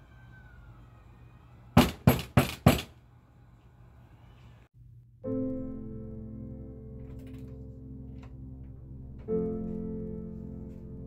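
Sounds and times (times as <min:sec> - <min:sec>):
knocks on a door: 0:01.8 - 0:02.9.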